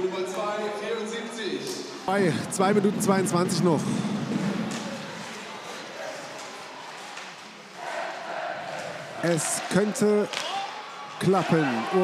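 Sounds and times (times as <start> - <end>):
crowd hubbub: 1.8 - 12.0
clicks of sticks and puck: 10.3 - 10.6.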